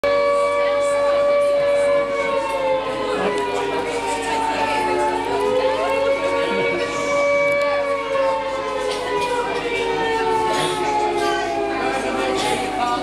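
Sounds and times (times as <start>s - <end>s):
air-raid siren wailing: 0.0s - 13.0s
people talking: 0.2s - 13.0s.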